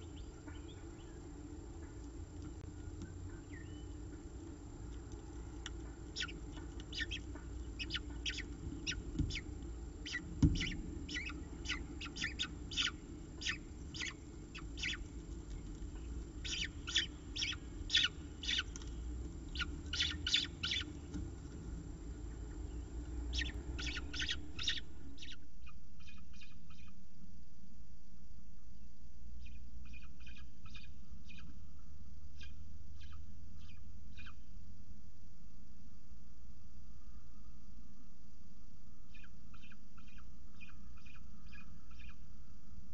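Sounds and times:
steady low hum: 0.0 - 42.9
falcon chicks begging calls: 4.8 - 25.4.

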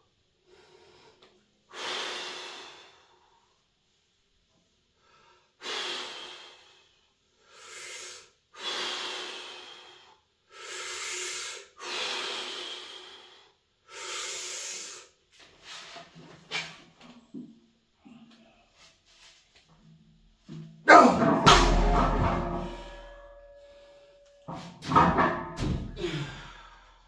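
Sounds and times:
weightlifter breathing hard: 5.0 - 15.2, 25.9 - 27.0
steel log crashing onto rubber mats: 20.9 - 23.4, 24.5 - 26.0
hollow metal ringing: 20.9 - 26.2
deep thud: 21.1 - 23.6, 24.5 - 26.1.

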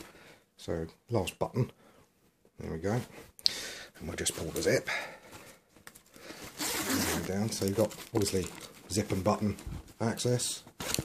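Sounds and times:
metal zip being pulled: 6.5 - 7.5.

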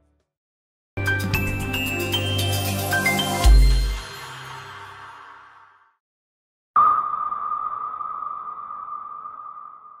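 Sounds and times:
electronic ping tone: 6.8 - 10.0.

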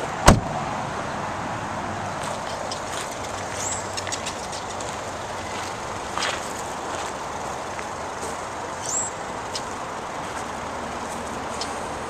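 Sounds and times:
outdoor background noise: 0.0 - 12.0
car door shutting: 0.2 - 0.5.

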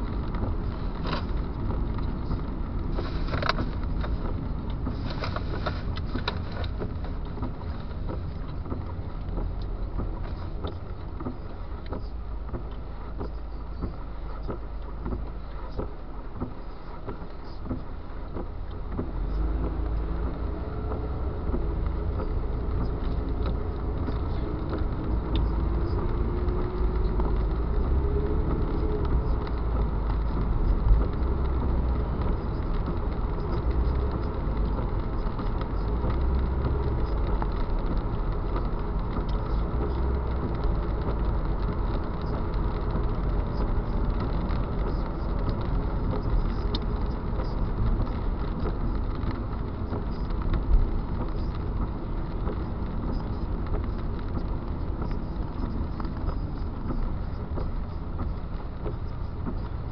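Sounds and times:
car engine and road rumble: 0.0 - 59.9
tyres on wet road: 0.0 - 59.9.

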